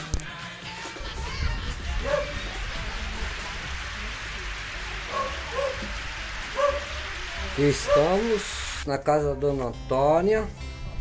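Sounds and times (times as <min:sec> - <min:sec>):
steady hiss: 0:01.2 - 0:08.9.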